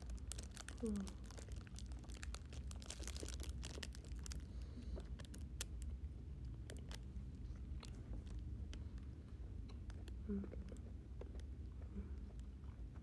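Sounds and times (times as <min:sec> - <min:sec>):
plastic bag crinkling: 0:00.0 - 0:05.8, 0:06.7 - 0:07.1.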